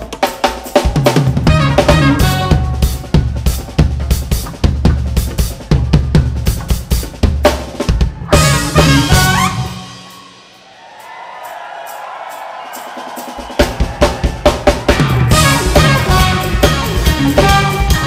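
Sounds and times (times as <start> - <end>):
drum groove: 0.0 - 18.0
funk band playing: 0.0 - 18.0.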